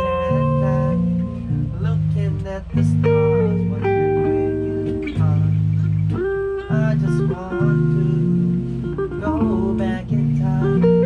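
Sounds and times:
electric bass guitar: 0:00.0 - 0:11.0
electric guitar: 0:00.0 - 0:11.0.

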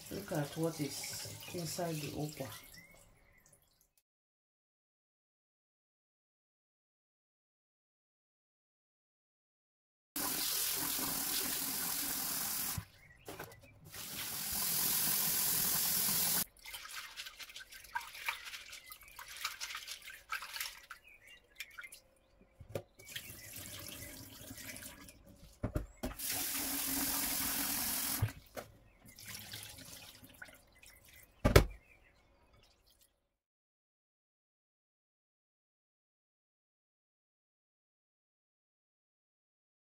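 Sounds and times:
tap water running into bowl: 0:10.2 - 0:12.8, 0:13.9 - 0:16.5
hands swirling seeds in water: 0:16.4 - 0:22.0.

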